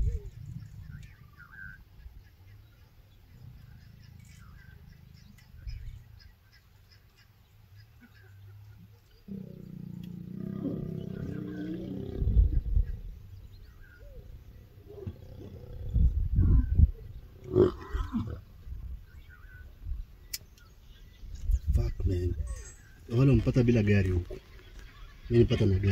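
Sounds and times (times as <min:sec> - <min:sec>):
lion growling: 0:09.2 - 0:18.5
lions snarling: 0:09.2 - 0:18.5.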